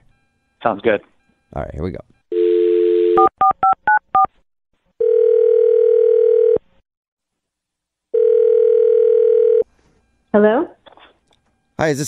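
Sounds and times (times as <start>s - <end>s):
telephone ringback tones: 2.3s - 3.3s, 5.0s - 6.6s, 8.1s - 9.7s
telephone dial tone: 5.0s - 6.6s, 8.1s - 9.7s.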